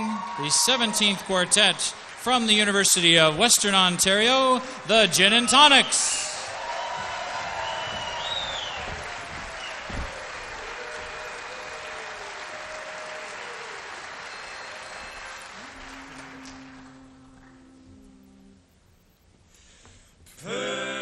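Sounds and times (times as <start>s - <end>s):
audience applauding: 0.0s - 17.8s
short whistle: 7.6s - 8.9s
quartet humming held notes: 7.6s - 19.2s
thump: 7.8s - 10.5s.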